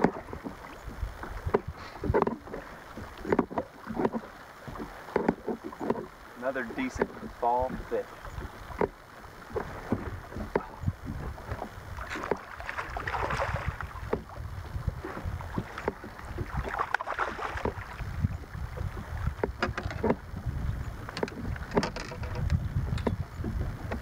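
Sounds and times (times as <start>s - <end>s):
water slapping boat hull: 0.0s - 24.0s
wind buffeting microphone: 0.0s - 24.0s.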